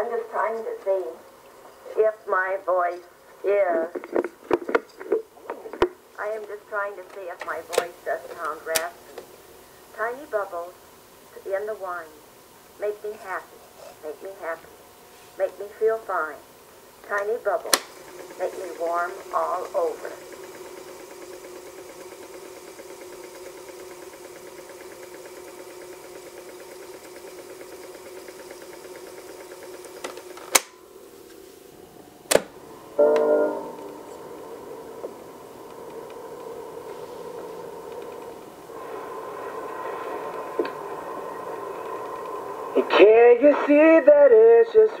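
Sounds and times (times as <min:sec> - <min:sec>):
tape recorder winding tape: 0:03.7 - 0:14.8, 0:15.4 - 0:44.9.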